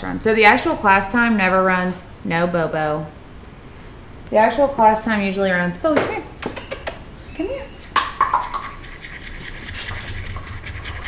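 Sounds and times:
hands rubbing and scraping: 7.8 - 11.0.

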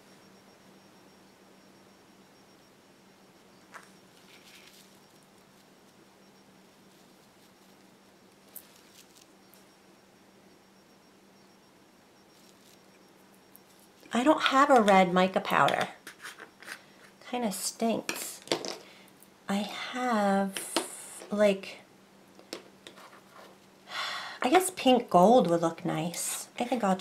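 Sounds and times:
faint steady hum: 0.0 - 27.0.

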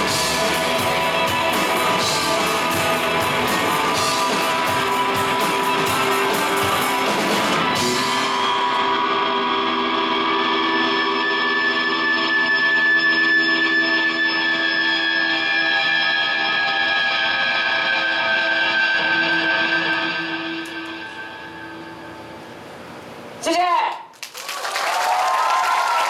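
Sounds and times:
drums: 0.0 - 13.4
electric guitar chord ringing: 0.0 - 23.2.

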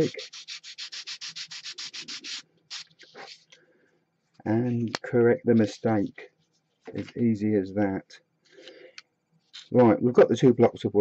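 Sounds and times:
sanding stick rubbing wood: 0.0 - 3.4.

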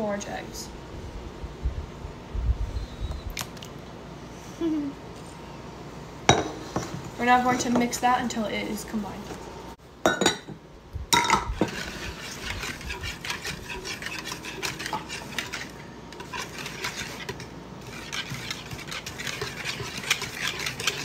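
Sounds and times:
wire whisk beating in plastic bowl: 11.6 - 21.0.

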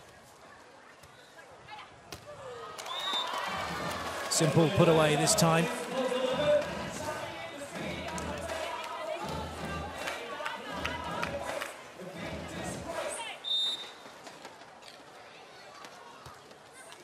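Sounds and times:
light crowd noise: 0.0 - 17.0
music over public address: 4.3 - 13.4
voices over public address: 4.3 - 13.8.

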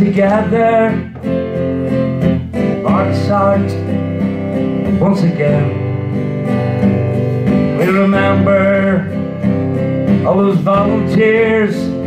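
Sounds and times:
acoustic guitar ballad: 0.0 - 12.0
person singing: 2.8 - 3.9, 4.9 - 6.0, 7.7 - 9.4, 10.2 - 12.0.

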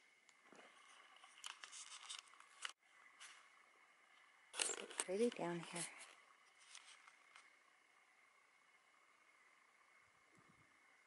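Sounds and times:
faint rustles and ticks: 0.2 - 8.0.

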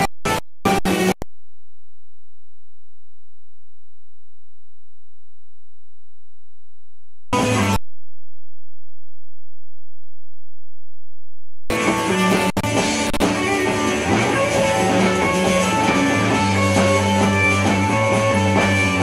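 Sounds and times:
live rock band music: 11.7 - 19.0.

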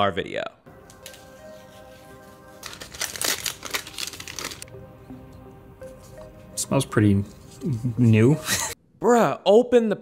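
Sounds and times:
soft background music: 0.0 - 10.0
paper packaging crinkling: 0.8 - 4.8.

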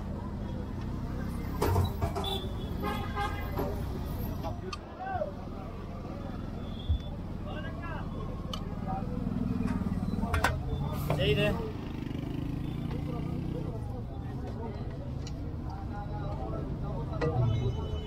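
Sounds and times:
traffic rumble: 0.0 - 18.0
voices: 0.0 - 18.0
car horns tooting: 1.9 - 4.0, 17.2 - 18.0.

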